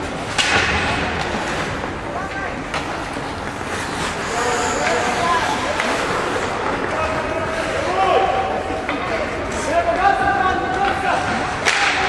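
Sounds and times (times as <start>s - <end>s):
hockey stick hitting puck: 0.1s - 4.0s, 8.8s - 9.2s, 10.8s - 12.0s.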